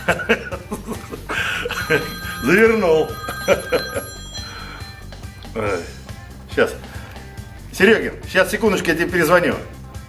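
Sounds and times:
mobile phone ringing: 1.4 - 6.1.

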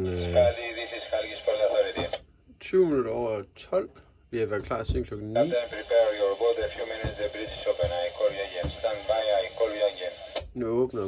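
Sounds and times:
speech over radio loudspeaker: 0.0 - 2.2, 5.4 - 11.0
radio hiss: 0.0 - 2.3, 5.4 - 11.0.

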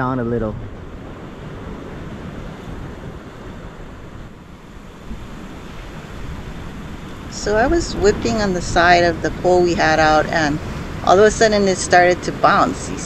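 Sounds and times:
ocean surf against rocks: 0.0 - 13.0
wind on microphone: 0.0 - 13.0.

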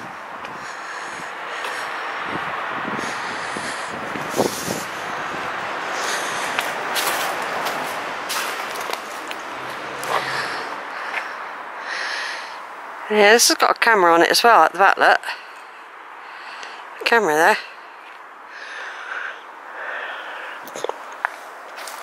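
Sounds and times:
outdoor background noise: 0.0 - 22.0.

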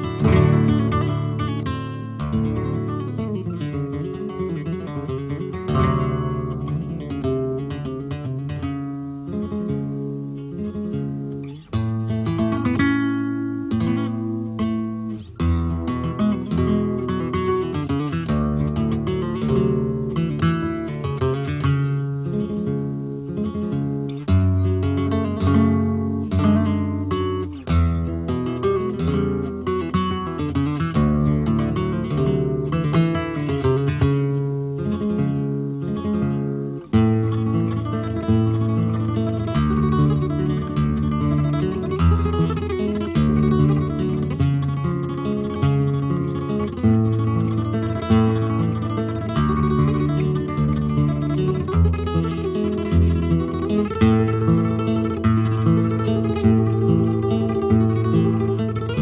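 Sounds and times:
solo flamenco guitar: 0.0 - 59.0.

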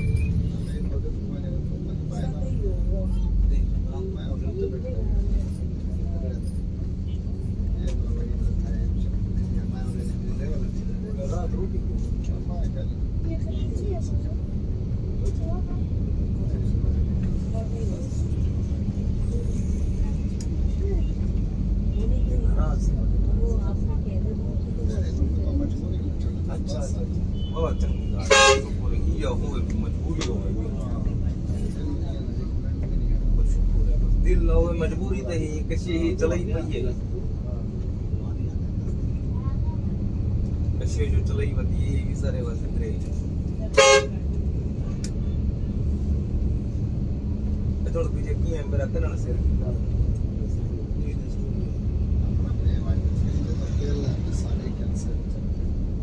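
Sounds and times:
vehicle horn toot: 27.4 - 28.8, 43.8 - 44.2.

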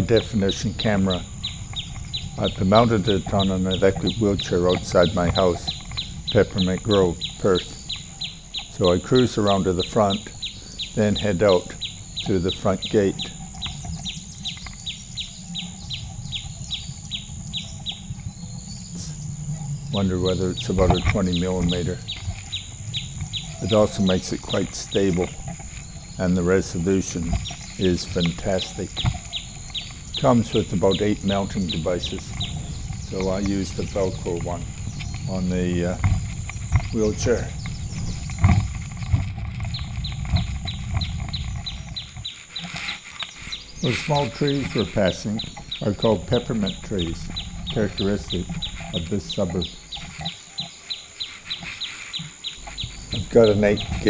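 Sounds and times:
bird chirping: 0.0 - 54.0
electric wheelchair rumble: 0.0 - 54.0.

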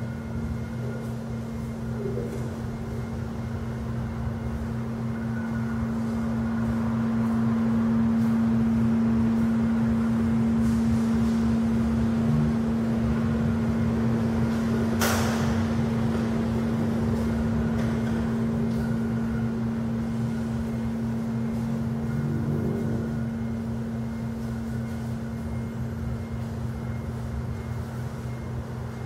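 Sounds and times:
low drone with constant hum: 0.0 - 29.0.

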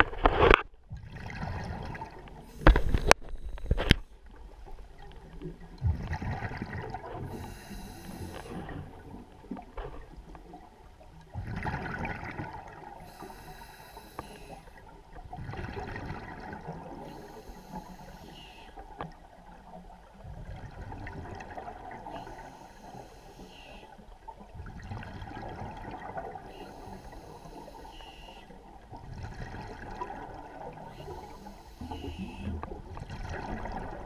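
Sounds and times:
muffled underwater rumble: 0.0 - 34.0
water splashing: 28.8 - 34.0.

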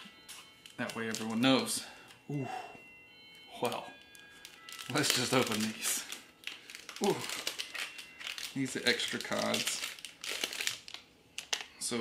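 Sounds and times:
plastic bag crinkling: 0.0 - 2.2, 3.5 - 12.0.

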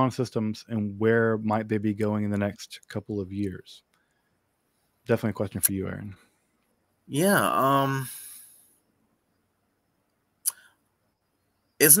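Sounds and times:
man's lip smack: 10.4 - 10.7.

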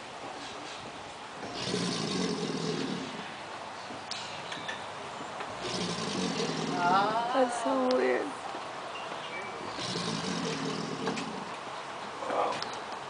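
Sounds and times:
alligator bellowing: 1.4 - 3.3, 5.6 - 7.5, 9.7 - 11.5.

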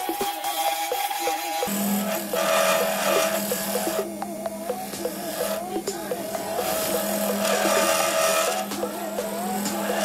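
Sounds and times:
background music: 0.0 - 10.0
lathe tool rasping wood: 1.1 - 4.1, 4.8 - 10.0
steady low hum: 1.6 - 10.0.

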